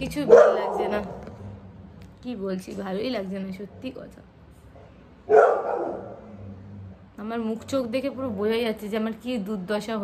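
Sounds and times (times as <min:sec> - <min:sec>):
dog barking: 0:00.2 - 0:01.2, 0:05.3 - 0:06.3.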